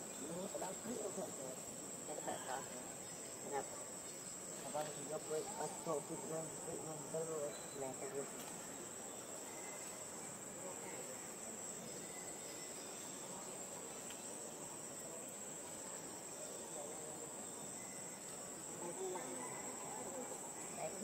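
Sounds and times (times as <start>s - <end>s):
insect chorus drone: 0.0s - 21.0s.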